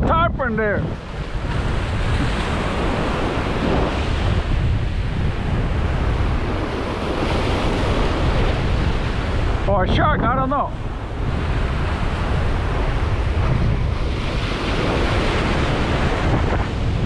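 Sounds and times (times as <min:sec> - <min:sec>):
wind noise on microphone: 0:00.0 - 0:17.0
surf breaking on rocks: 0:00.1 - 0:17.0.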